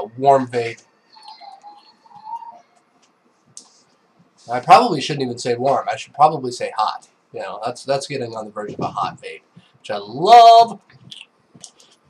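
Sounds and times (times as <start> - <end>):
light crackling of heating coil: 2.7 - 12.0.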